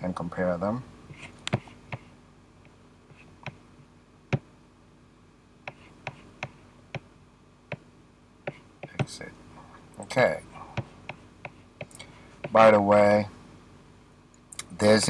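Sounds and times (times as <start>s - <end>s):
faint steady hum: 0.0s - 15.0s.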